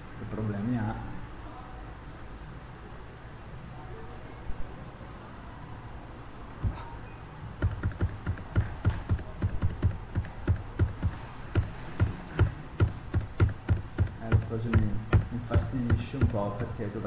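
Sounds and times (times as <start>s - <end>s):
keyboard and mouse clicks: 7.6s - 16.8s.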